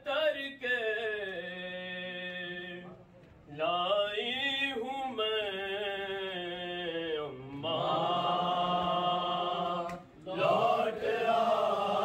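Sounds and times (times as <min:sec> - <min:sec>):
men chanting a lament: 0:03.6 - 0:12.0.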